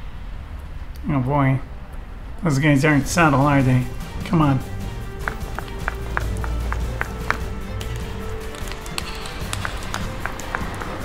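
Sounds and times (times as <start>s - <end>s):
background music with low bass: 2.8s - 11.0s
quick footsteps: 3.0s - 11.0s.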